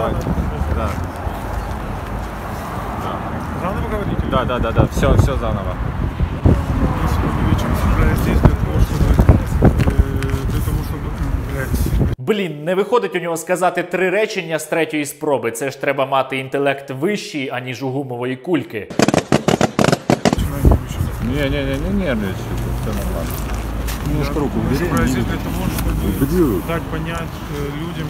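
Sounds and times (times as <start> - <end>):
man speaking: 6.5 - 18.9, 20.3 - 23.4, 24.0 - 28.0
balloons popping rapidly: 18.9 - 20.4.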